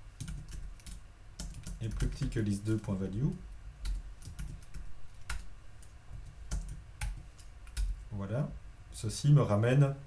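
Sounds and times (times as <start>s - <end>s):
typing on computer keyboard: 0.2s - 8.0s.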